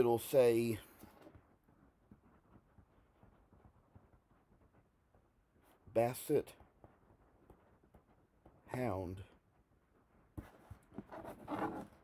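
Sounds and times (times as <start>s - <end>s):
pen scratching on paper: 10.4s - 12.0s.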